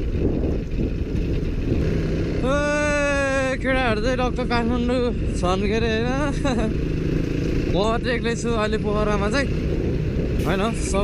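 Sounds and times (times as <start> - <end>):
dirt bike engine running: 0.0 - 11.0
wind rumble on microphone: 0.0 - 11.0
person talking: 10.4 - 11.0.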